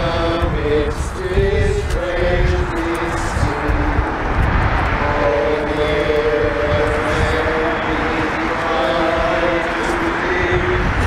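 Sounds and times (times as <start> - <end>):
hymn singing: 0.0 - 11.0
steady low rumble: 0.0 - 11.0.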